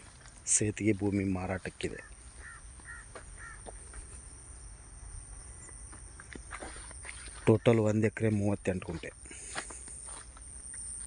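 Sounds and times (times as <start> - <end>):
faint high-pitched whine: 0.0 - 11.0
bird calling: 1.9 - 8.2.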